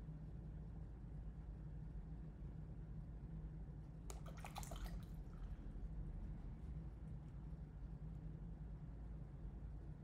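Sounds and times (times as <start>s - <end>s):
faint steady low hum: 0.0s - 10.0s.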